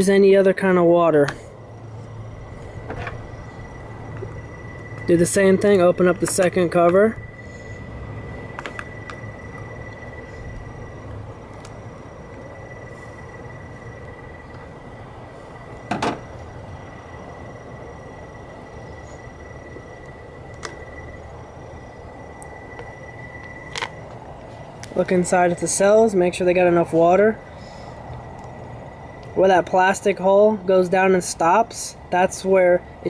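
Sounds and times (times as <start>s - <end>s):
low background hum: 0.0s - 33.0s.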